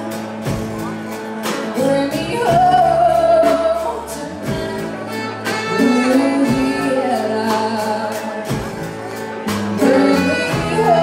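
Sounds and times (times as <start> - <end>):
zydeco band playing: 0.0 - 11.0
person singing: 1.7 - 9.0, 9.7 - 11.0.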